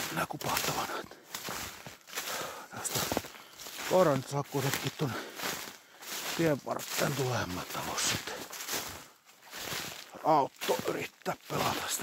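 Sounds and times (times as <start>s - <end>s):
footsteps in snow: 0.0s - 12.0s.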